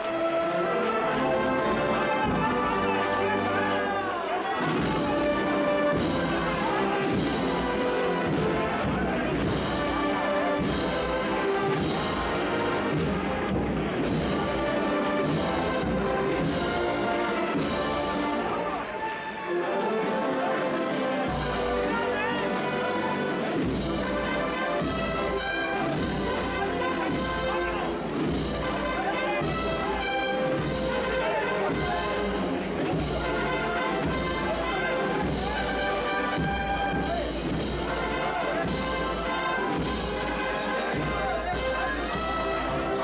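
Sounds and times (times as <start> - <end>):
brass band playing march: 0.0 - 43.0
crowd voices: 0.0 - 43.0
steady drum beat: 4.6 - 18.4, 23.4 - 43.0.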